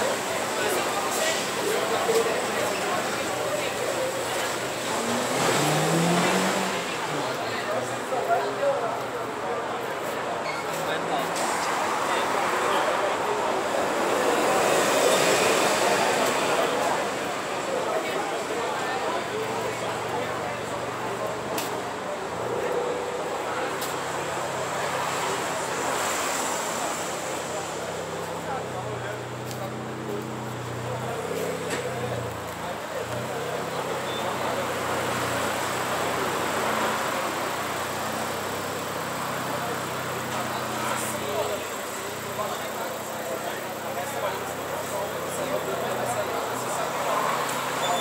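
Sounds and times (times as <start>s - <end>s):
car engines idling: 0.0s - 48.0s
crowd chatter: 0.0s - 48.0s.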